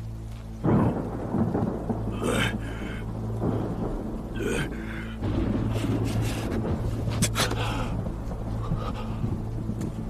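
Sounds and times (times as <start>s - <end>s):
rain: 0.0s - 10.0s
steady low drone: 0.0s - 10.0s
thunder rumbling: 0.6s - 10.0s.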